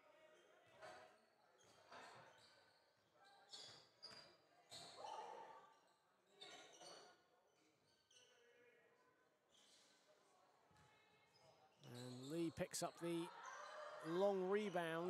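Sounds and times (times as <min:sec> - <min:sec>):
sneaker squeaks: 0:01.6 - 0:05.4, 0:06.3 - 0:07.2, 0:11.4 - 0:15.0
players calling out: 0:14.0 - 0:15.0.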